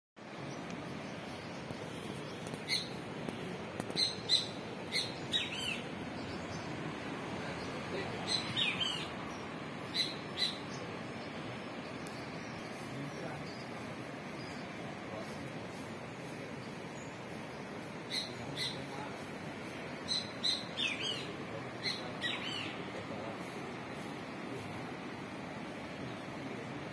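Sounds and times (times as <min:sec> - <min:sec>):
steady outdoor hiss: 0:00.2 - 0:26.9
bird chirping: 0:00.3 - 0:15.2, 0:16.1 - 0:24.6.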